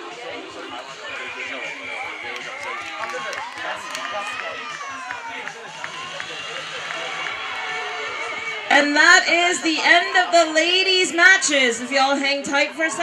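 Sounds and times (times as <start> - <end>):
spectators shouting and cheering: 0.0 - 13.0.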